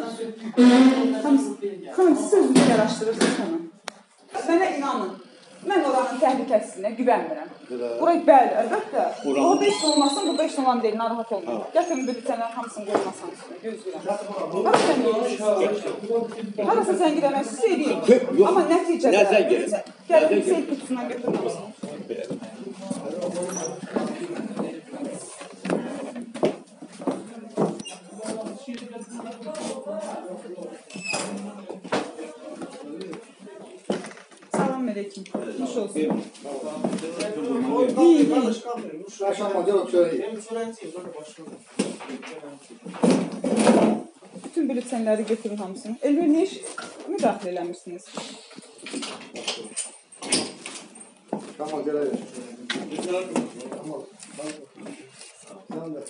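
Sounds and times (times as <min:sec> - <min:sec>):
indistinct voices talking: 0:04.3 - 0:26.4.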